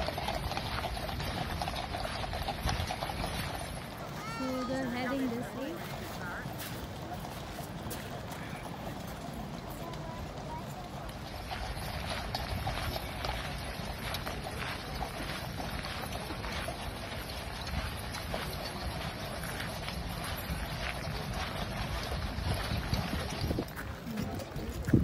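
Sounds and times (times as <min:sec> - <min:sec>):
horse hooves on gravel: 0:00.0 - 0:25.0.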